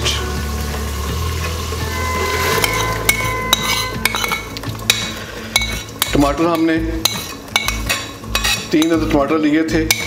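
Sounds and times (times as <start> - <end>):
spoon scraping and clinking on pot: 1.9 - 9.2.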